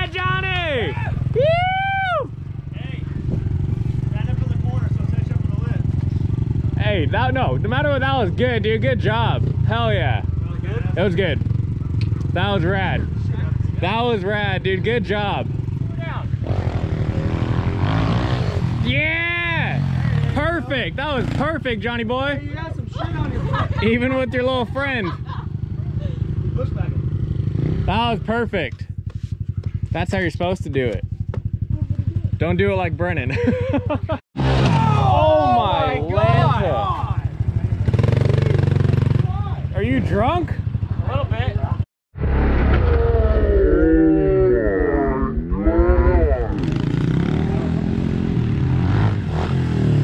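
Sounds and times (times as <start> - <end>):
pit bike engine running: 0.0 - 18.7.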